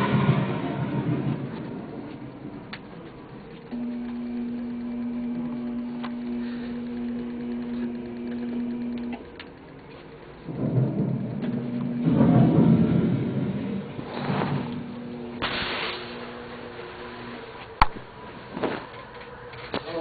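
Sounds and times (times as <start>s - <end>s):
thunder rumbling: 0.0s - 9.4s, 10.3s - 18.7s
steady low hum: 0.0s - 20.0s.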